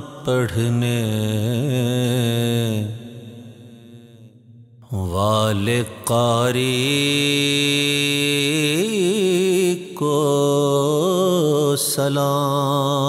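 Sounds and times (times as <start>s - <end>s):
man singing devotional song: 0.0s - 13.0s.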